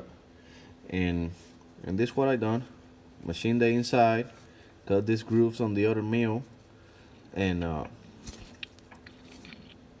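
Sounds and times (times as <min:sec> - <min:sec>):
faint steady hum: 0:00.0 - 0:10.0
light clicks and scrapes: 0:08.2 - 0:09.8.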